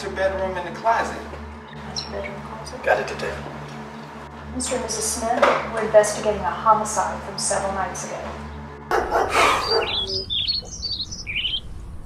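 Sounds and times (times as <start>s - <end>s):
small birds chirping: 0.0s - 4.2s, 7.5s - 11.8s.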